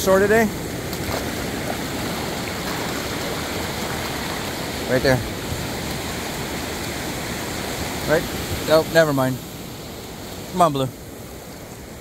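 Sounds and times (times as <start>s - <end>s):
ocean surf washing up beach: 0.0s - 12.0s.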